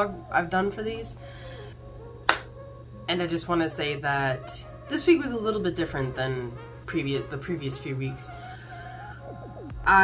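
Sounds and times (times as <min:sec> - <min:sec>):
hand snap: 0:02.2 - 0:02.5.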